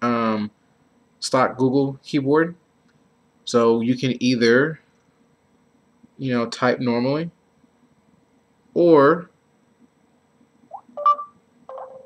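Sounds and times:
touchscreen keyboard beeps: 10.7s - 12.0s.

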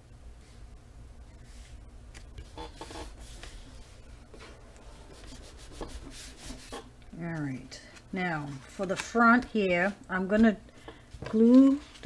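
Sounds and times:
hands rubbing over paper: 2.5s - 7.6s.

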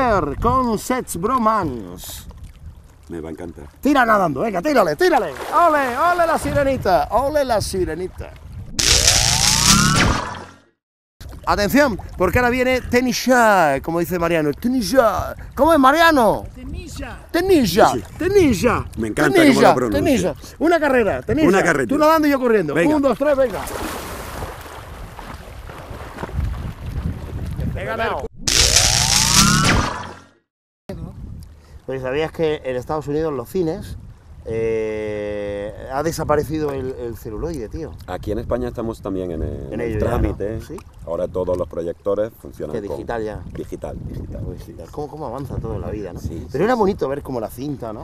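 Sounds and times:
rising whoosh: 8.8s - 10.7s, 28.4s - 30.4s.

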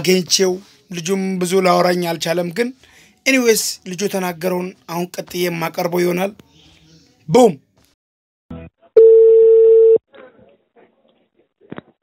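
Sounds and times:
steady telephone beep: 9.0s - 10.0s.

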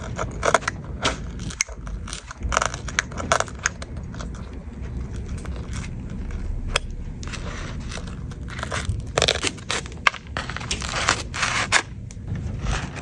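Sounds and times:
cracked glass crackling and crunching: 0.0s - 12.2s.

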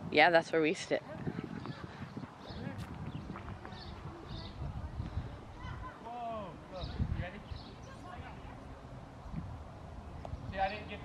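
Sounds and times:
faint voices: 0.5s - 9.1s.

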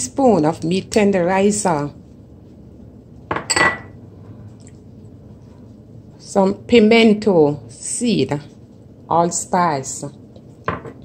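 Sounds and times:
glass bowl clinking: 3.3s - 4.0s.

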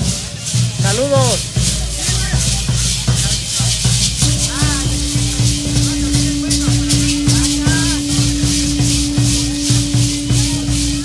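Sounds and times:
hand rattles shaking: 0.0s - 11.0s
steady drumbeat: 0.0s - 11.0s
long held note: 4.2s - 11.0s.

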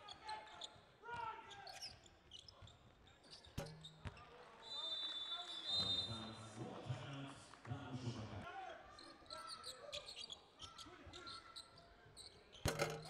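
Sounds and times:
shoe squeaks: 1.4s - 6.0s, 9.0s - 13.0s.

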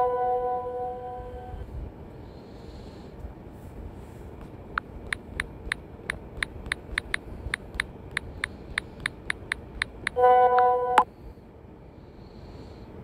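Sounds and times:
phone keyboard key clicks: 4.8s - 10.2s
loud horn-like honk: 10.2s - 11.0s.

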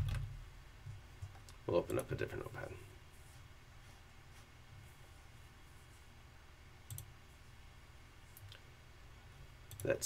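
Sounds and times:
computer mouse clicks: 6.9s - 7.1s, 8.3s - 8.6s, 9.7s - 10.0s.

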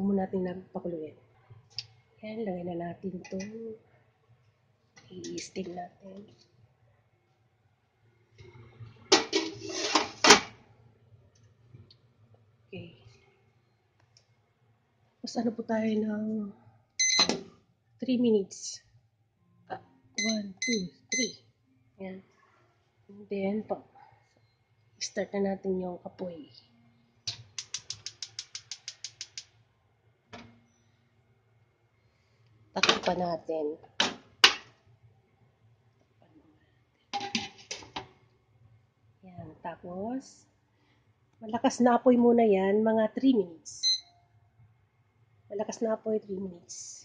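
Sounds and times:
metal tray scraping and clanking: 9.1s - 10.5s.

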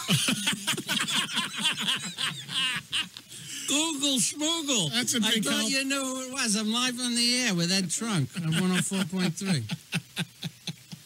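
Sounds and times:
men laughing: 0.0s - 3.9s, 8.3s - 11.0s.

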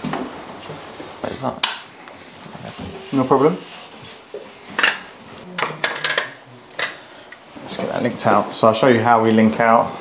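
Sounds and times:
kitchen items clinking: 4.8s - 7.0s.

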